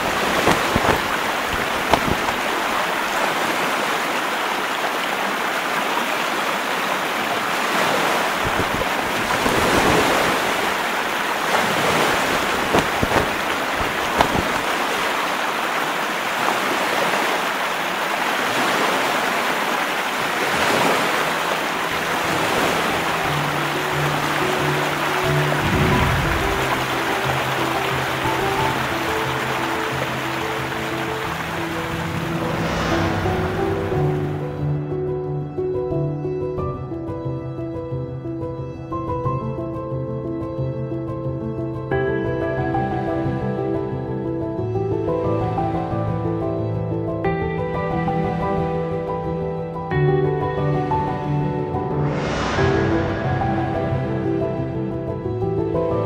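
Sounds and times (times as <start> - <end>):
rushing wind: 0.0 - 36.1, 50.5 - 56.0
rushing water: 0.0 - 56.0
soft music: 21.6 - 56.0.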